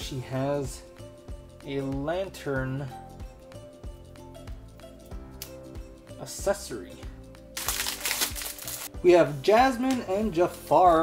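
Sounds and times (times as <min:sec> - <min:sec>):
background music: 0:00.0 - 0:11.0
plastic bag crinkling: 0:07.6 - 0:08.9.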